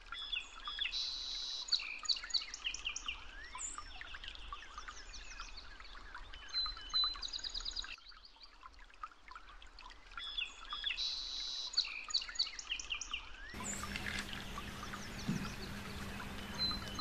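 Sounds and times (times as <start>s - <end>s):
small birds chirping: 13.6s - 17.0s.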